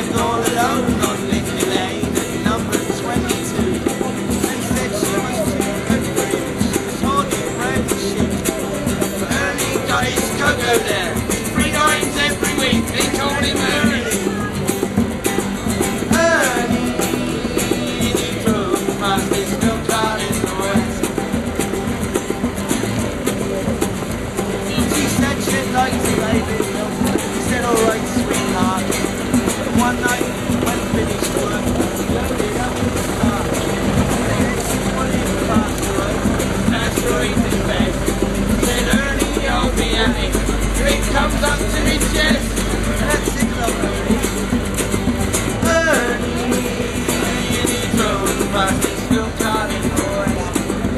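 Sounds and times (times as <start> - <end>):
person singing: 0.0 - 21.7, 24.6 - 44.5, 45.5 - 50.9
acoustic guitars strummed: 0.0 - 50.9
hand drum beat: 0.0 - 50.9.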